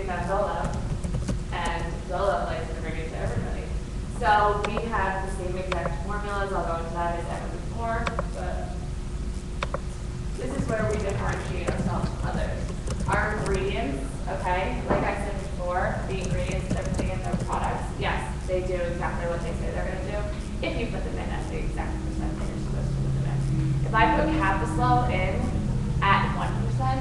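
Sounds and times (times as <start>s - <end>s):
woman talking: 0.0s - 0.8s, 1.5s - 8.8s, 10.4s - 27.0s
steady low rumble: 0.0s - 27.0s.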